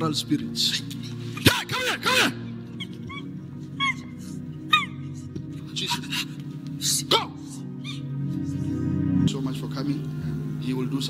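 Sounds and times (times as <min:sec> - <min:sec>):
sustained background music: 0:00.0 - 0:11.0
high vocal cries: 0:01.2 - 0:06.4, 0:07.5 - 0:08.3.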